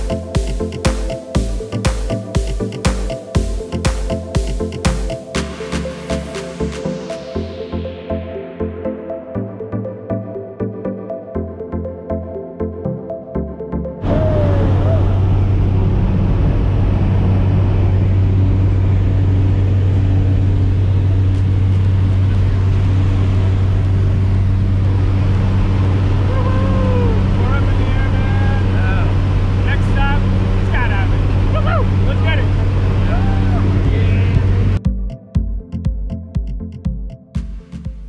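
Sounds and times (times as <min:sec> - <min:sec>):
plane engine drone inside cabin: 0:14.0 - 0:34.8
people's voices: 0:26.3 - 0:34.8.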